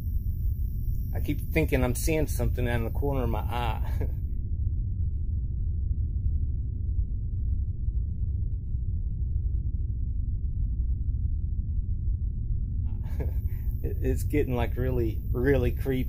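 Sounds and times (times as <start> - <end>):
muffled low rumble: 0.0 - 16.0.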